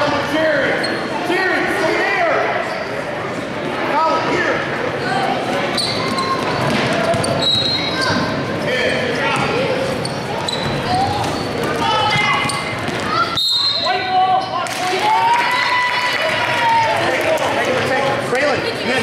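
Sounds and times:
basketball bouncing on gym floor: 0:10.5 - 0:13.3.

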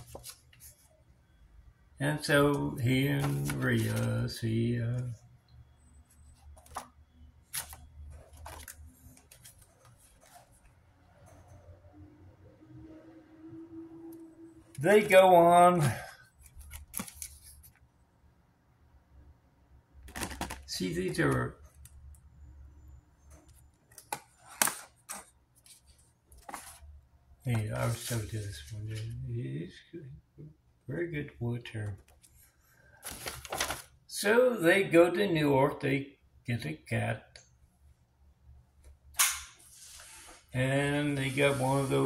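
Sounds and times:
paper cards rustling: 0:00.0 - 0:00.8, 0:02.9 - 0:04.3, 0:06.5 - 0:06.9, 0:07.5 - 0:10.7, 0:16.3 - 0:17.9, 0:23.5 - 0:26.9, 0:27.5 - 0:29.2, 0:33.0 - 0:34.0.

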